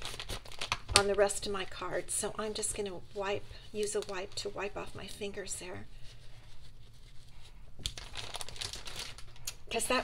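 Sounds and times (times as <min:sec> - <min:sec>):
plastic wipes pack crinkling: 0:00.0 - 0:10.0.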